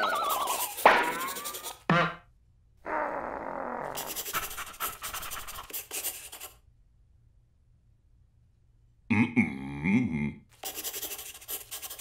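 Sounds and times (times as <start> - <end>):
pencil scribbling on paper: 0.0 - 1.9, 4.0 - 6.6, 10.6 - 12.0
wordless voice sound: 9.1 - 12.0.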